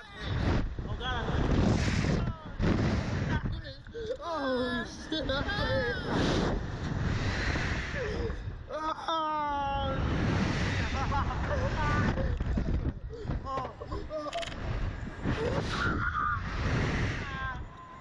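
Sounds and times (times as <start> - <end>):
wind buffeting microphone: 0.0 - 4.2, 4.8 - 8.8, 9.7 - 18.0.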